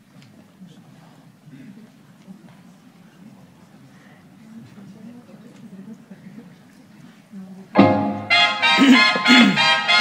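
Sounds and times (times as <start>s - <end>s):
faint low voices: 0.0s - 7.8s.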